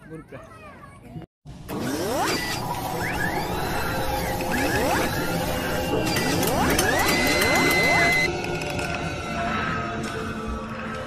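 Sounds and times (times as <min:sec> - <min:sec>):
rising whirring sweeps: 0:01.7 - 0:08.3
steady high tone: 0:02.8 - 0:08.3.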